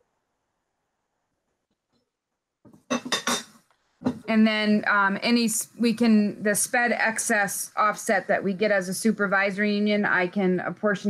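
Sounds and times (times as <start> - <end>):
clinks and knocks: 2.7 - 4.3.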